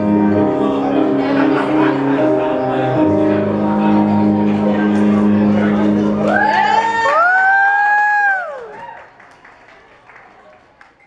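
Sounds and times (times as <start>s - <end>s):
music: 0.0s - 8.4s
person whooping: 6.3s - 9.0s.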